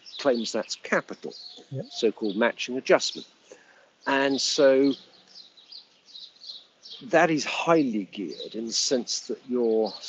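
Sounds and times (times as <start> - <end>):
bird chirps: 0.0 - 10.0
low background hiss: 0.0 - 10.0.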